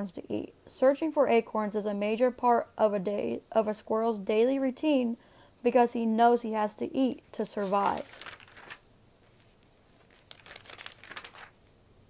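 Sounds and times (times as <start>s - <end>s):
dry crinkling rustling: 7.4s - 11.7s.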